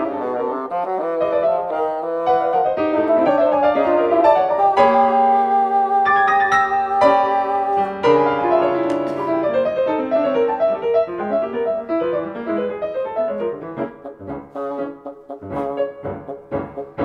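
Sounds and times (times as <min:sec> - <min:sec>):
bassoon: 0:00.0 - 0:17.0
piano: 0:00.0 - 0:17.0.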